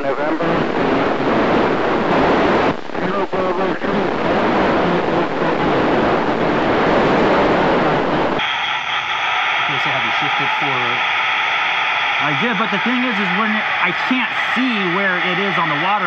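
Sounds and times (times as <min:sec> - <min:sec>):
faint garbled radio voices: 0:00.0 - 0:06.2, 0:08.4 - 0:16.0
radio static hiss: 0:00.0 - 0:16.0.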